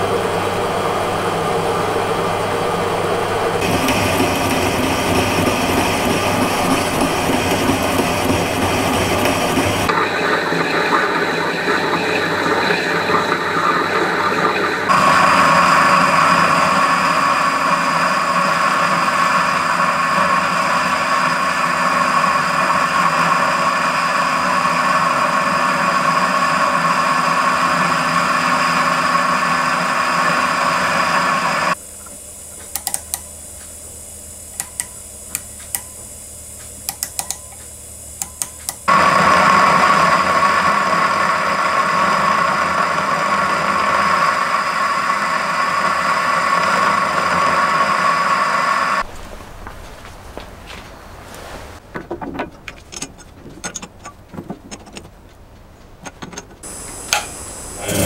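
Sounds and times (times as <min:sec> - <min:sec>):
metal lathe cutting steel: 0:00.0 - 0:31.8, 0:36.8 - 0:49.0, 0:56.3 - 0:58.0.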